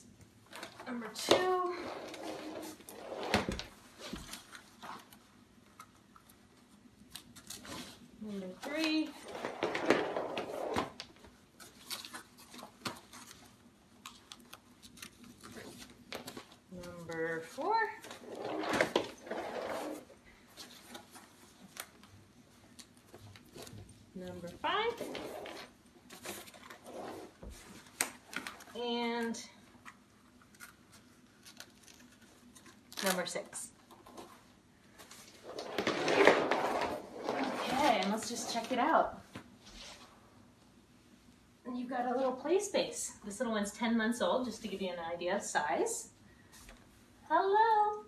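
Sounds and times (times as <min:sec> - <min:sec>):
velcro tearing: 0:31.4 - 0:33.4.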